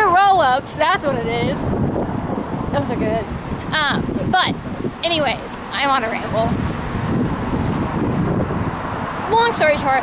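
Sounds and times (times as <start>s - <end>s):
road traffic: 0.0s - 10.0s
wind buffeting microphone: 0.0s - 10.0s.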